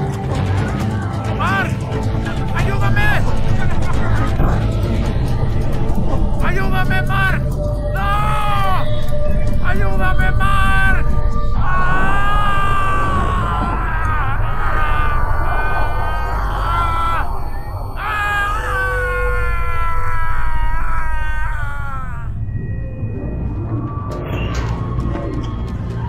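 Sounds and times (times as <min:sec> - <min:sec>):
tense music: 0:00.0 - 0:26.0
steady deep rumble: 0:00.7 - 0:26.0
wavering voice-like wails: 0:02.5 - 0:25.0.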